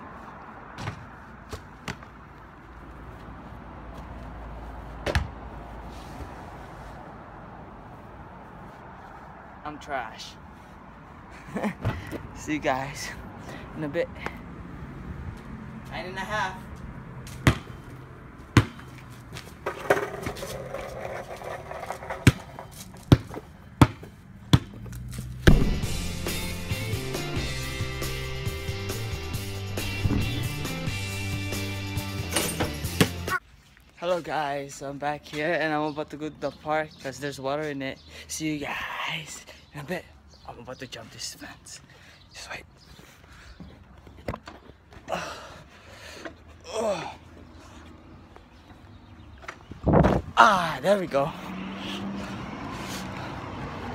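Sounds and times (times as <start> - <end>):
basketball bouncing on hard surface: 5.0 - 5.4, 17.3 - 17.8, 18.5 - 19.0, 22.1 - 25.8
music: 25.5 - 33.3.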